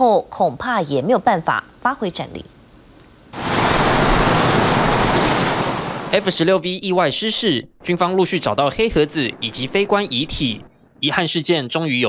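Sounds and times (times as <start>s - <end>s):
helicopter in flight: 3.4s - 6.2s.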